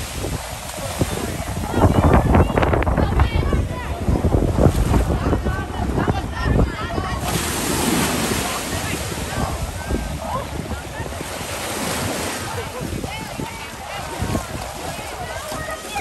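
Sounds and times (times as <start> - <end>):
distant crowd voices: 0.0 - 16.0
surf washing against rocks: 0.0 - 16.0
wind buffeting microphone: 0.0 - 16.0.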